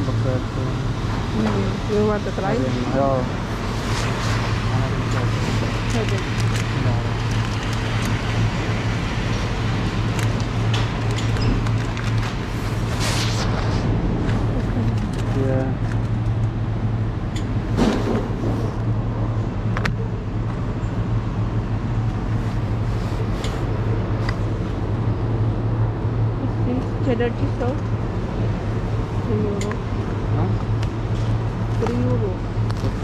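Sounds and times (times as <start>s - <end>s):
refrigeration hum with air hiss: 0.0s - 33.0s.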